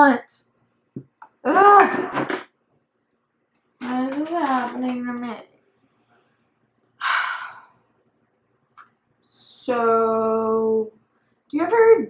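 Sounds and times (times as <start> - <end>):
woman sighing heavily: 7.0 - 7.7.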